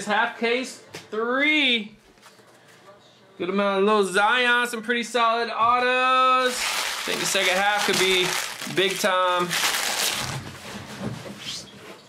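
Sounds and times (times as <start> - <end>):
foil wrappers rustling and crinkling: 6.4 - 10.6.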